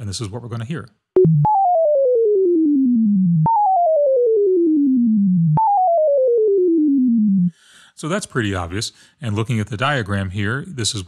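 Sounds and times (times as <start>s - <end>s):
synthesizer tone stepping down: 1.2s - 7.5s.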